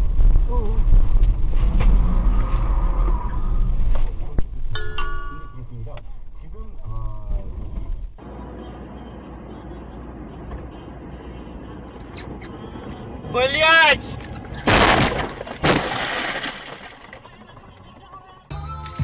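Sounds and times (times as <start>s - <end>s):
cabin road noise: 0.0s - 18.5s
loud car impact: 14.6s - 17.8s
windshield crunching and shattering: 14.6s - 17.8s.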